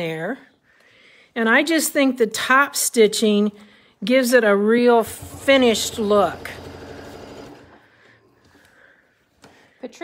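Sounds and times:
sewing machine running: 5.0 - 7.8.

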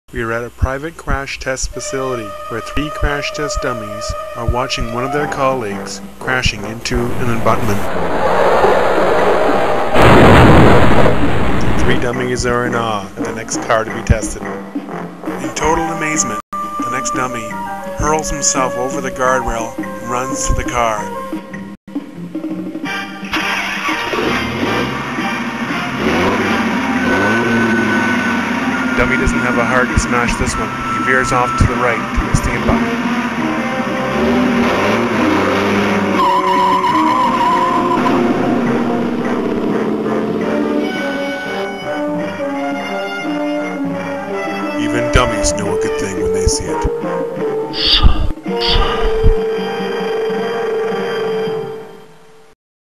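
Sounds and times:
background music: 1.6 - 8.4, 9.6 - 52.5
car engine revving: 6.9 - 12.3, 23.2 - 46.6.

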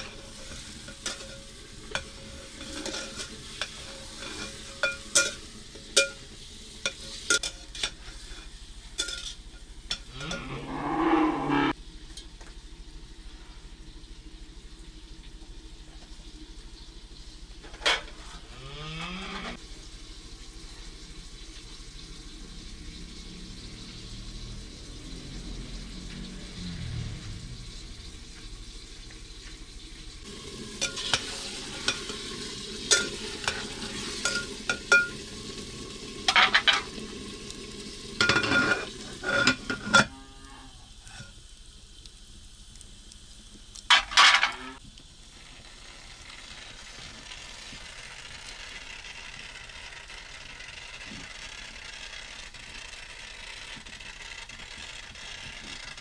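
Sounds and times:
metal utensil scraping a pot: 0.0 - 6.2, 6.8 - 11.8, 30.8 - 35.2, 36.3 - 36.9, 38.2 - 40.2, 41.0 - 41.4, 43.9 - 44.8
eggplant sizzling in a pot: 0.0 - 56.0.

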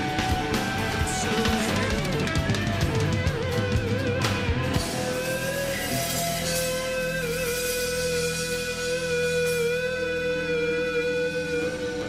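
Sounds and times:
pop rock band playing: 0.0 - 12.0.

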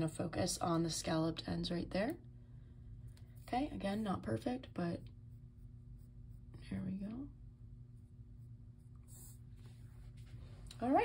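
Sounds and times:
low electrical hum: 0.0 - 11.0
pencil scratching on paper: 3.4 - 6.7.

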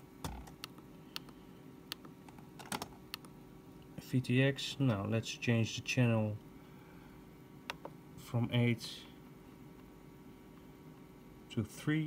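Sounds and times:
transmitter buttons clicking: 2.8 - 3.3.

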